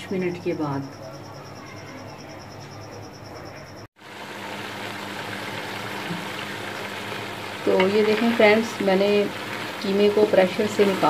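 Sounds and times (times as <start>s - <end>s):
meat sizzling in a pot: 4.0s - 11.0s.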